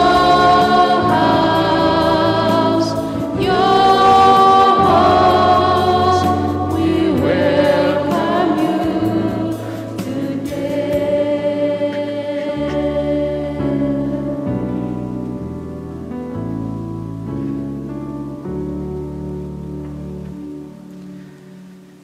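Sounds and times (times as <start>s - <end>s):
church choir singing a hymn: 0.0s - 15.2s
steady low accompaniment: 0.0s - 22.0s.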